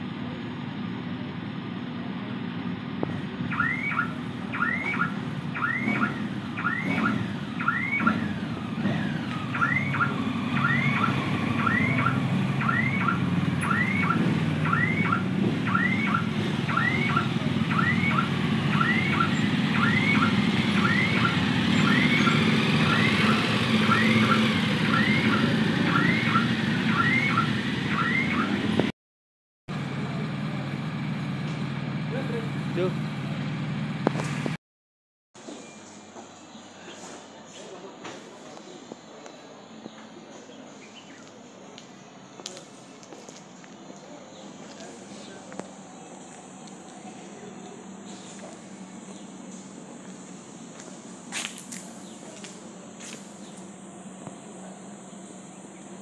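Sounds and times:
motorcycle engines idling: 0.0s - 28.8s, 29.7s - 34.6s, 35.4s - 56.0s
alarm chirping: 3.5s - 8.4s, 9.4s - 28.7s.

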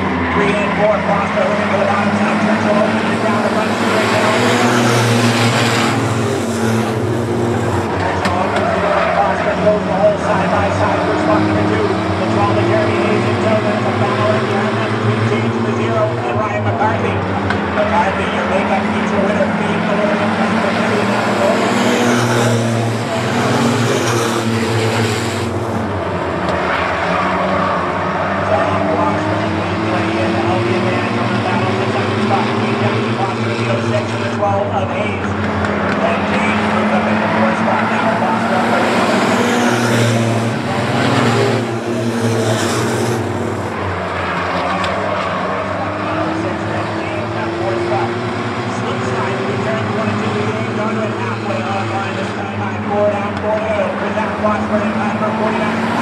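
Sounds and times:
race car engines revving: 0.0s - 56.0s
race cars passing by: 0.0s - 56.0s.

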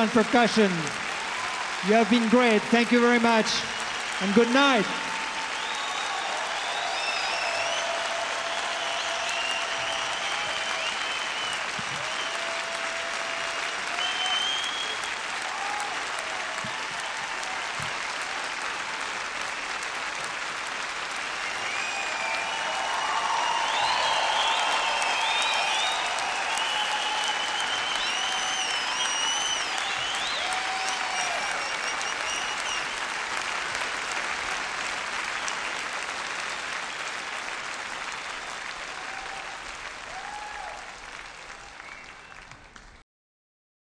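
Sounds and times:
audience cheering: 0.0s - 42.7s
audience applauding: 0.0s - 43.0s.

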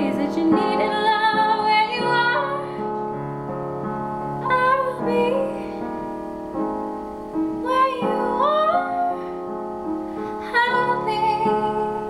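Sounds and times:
woman singing: 0.0s - 2.9s, 4.4s - 5.9s, 7.6s - 9.3s, 10.4s - 12.0s
digital piano chords: 0.0s - 12.0s.

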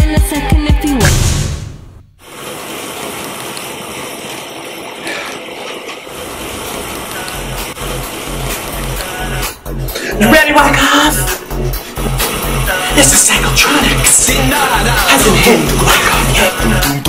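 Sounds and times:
pulsing bass beat: 0.0s - 1.4s.

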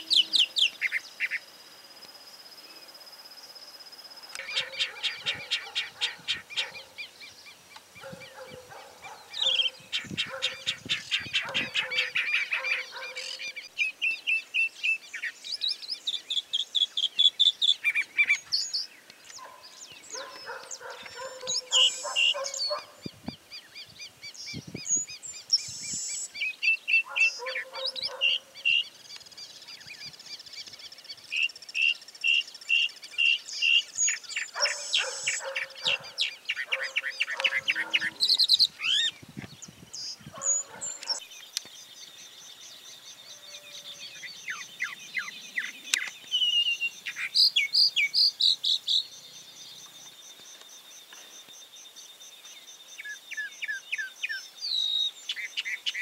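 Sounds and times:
mockingbird singing: 0.0s - 1.5s, 4.3s - 50.6s.

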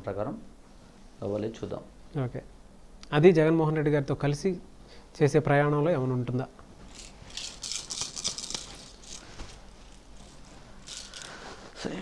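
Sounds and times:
shells rattling in hands: 6.9s - 11.7s.

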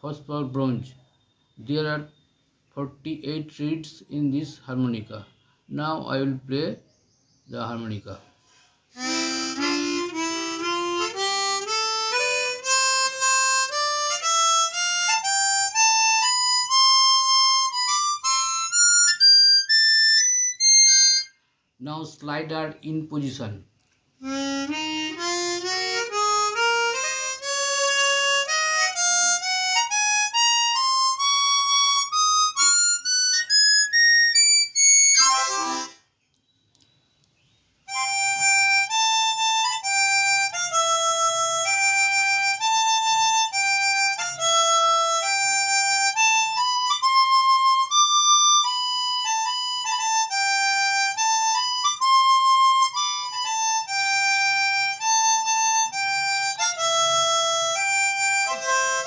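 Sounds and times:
harmonica playing: 8.9s - 21.4s, 24.2s - 36.1s, 37.8s - 59.0s.

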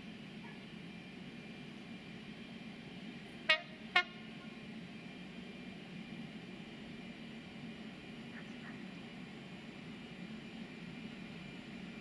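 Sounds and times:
locomotive low hum: 0.0s - 12.0s
two-tone locomotive horn blasts: 3.4s - 4.6s.

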